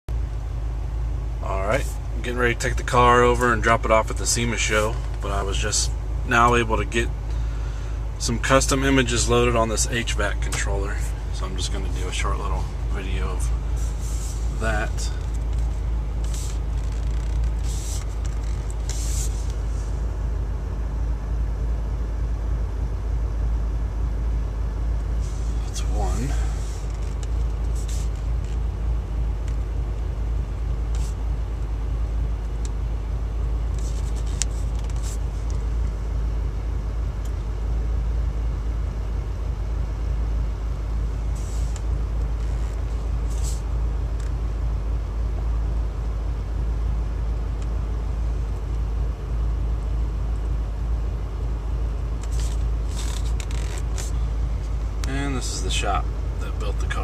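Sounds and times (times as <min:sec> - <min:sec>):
car engine idling: 0:00.1 - 0:57.0.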